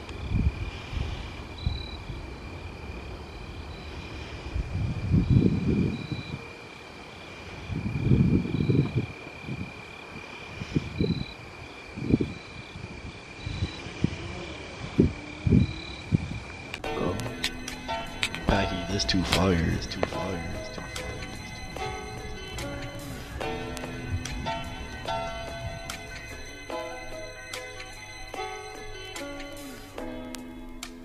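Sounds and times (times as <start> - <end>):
wind buffeting microphone: 0.0 - 29.1
high insect chirp: 0.0 - 31.0
insects trilling: 0.0 - 31.0.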